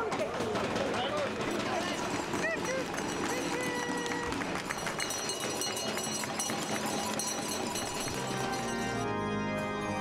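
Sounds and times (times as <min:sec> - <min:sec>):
crowd talking: 0:00.0 - 0:08.9
hand claps: 0:02.0 - 0:08.5.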